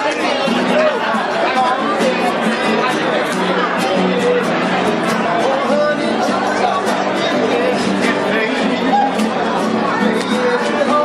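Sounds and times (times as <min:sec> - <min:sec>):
acoustic guitars strummed: 0:00.0 - 0:11.0
crowd chatter: 0:00.0 - 0:11.0.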